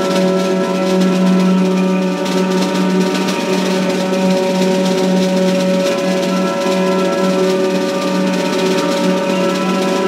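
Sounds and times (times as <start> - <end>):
cymbals and drum kit: 0.0 - 10.0
sustained droning ensemble tones: 0.0 - 10.0.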